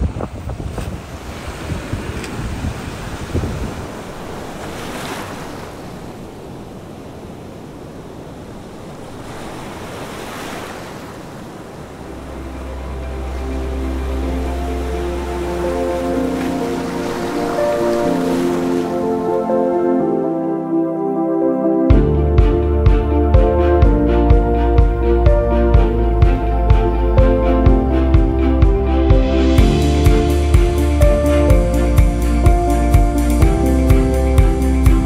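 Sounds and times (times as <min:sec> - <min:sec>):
wind buffeting microphone: 0:00.0 - 0:18.5
surf washing onto beach: 0:00.0 - 0:19.5
soft ambient music: 0:11.6 - 0:35.0.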